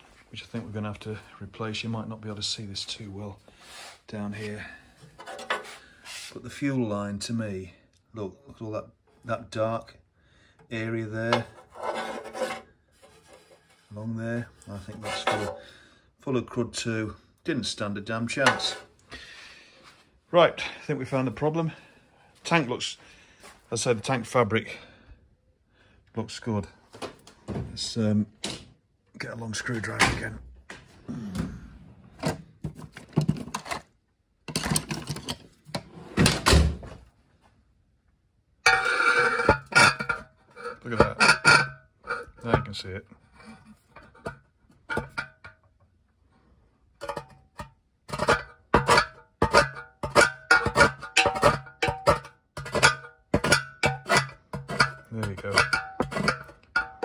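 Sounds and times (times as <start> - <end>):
hand brushing scraping rub: 3.6 - 4.5, 5.2 - 6.4
screwdriver scraping inside metal tank: 11.2 - 13.6, 14.8 - 15.6, 18.4 - 18.9, 38.7 - 42.7, 43.4 - 45.5, 47.0 - 57.0
hand tools clattering in drawer: 18.5 - 18.8, 34.5 - 35.4, 48.1 - 57.0.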